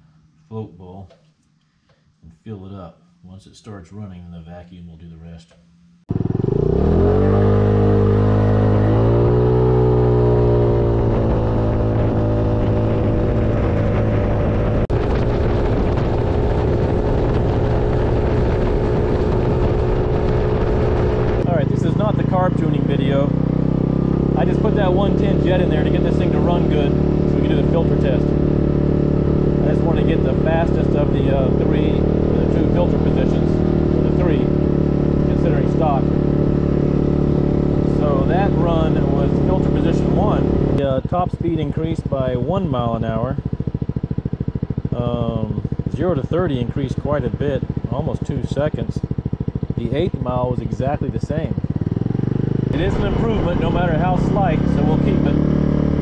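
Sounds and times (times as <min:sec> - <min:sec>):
scooter engine accelerating: 0:06.1 - 0:56.0
wind noise on microphone: 0:10.9 - 0:21.5.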